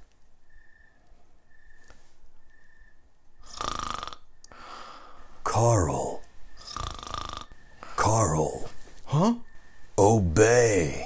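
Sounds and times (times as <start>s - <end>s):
man snoring loudly: 3.4s - 4.2s, 6.6s - 7.5s
man breathing quietly: 4.4s - 5.4s, 7.5s - 8.1s.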